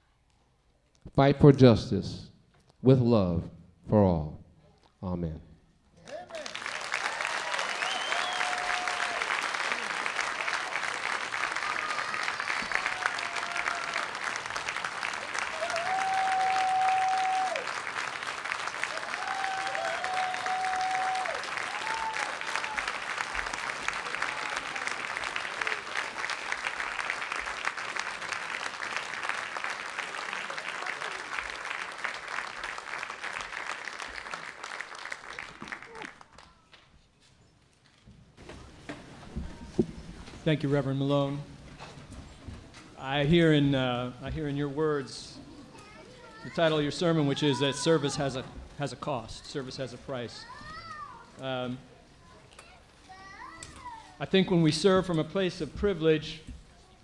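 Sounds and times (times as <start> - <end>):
audience clapping: 6.0 - 36.9
voices whooping: 6.3 - 14.3, 15.2 - 17.8, 18.8 - 23.1.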